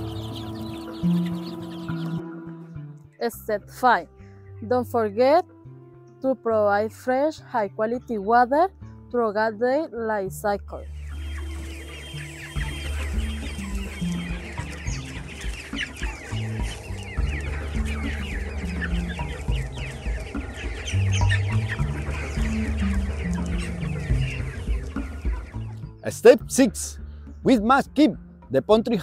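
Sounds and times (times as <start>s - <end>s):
chickens calling: 0.0s - 2.8s, 10.7s - 29.0s
background music with bass line: 0.0s - 6.7s, 10.3s - 29.0s.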